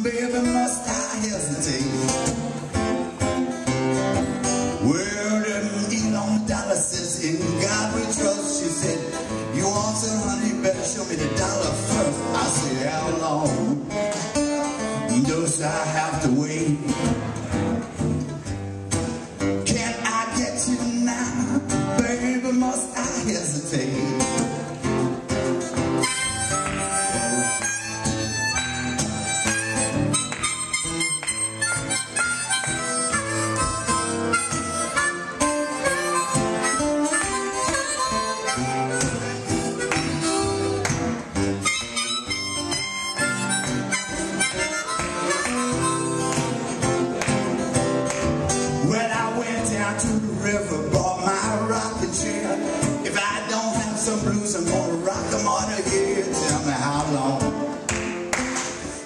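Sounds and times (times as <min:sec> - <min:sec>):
acoustic guitar accompaniment: 0:00.0 - 0:59.0
blues harmonica solo: 0:24.0 - 0:48.8.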